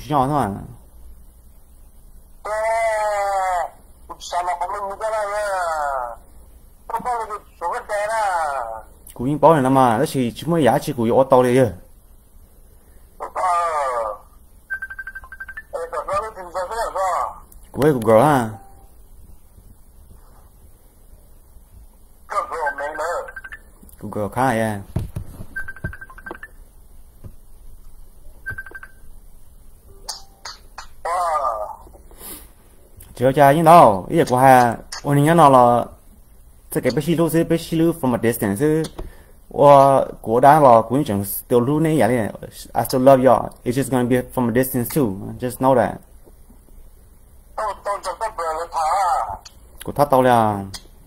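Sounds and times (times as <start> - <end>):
steady low hum: 0.0 - 51.0
short high electronic beeps: 22.7 - 23.7.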